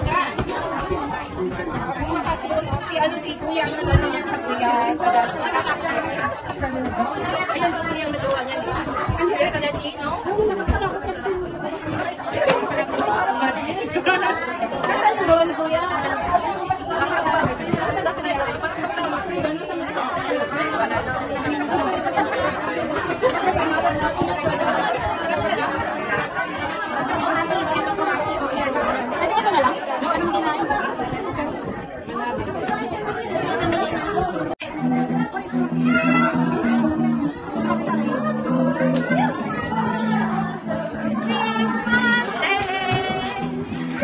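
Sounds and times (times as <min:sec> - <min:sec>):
babble of overlapping voices: 0:00.0 - 0:44.0.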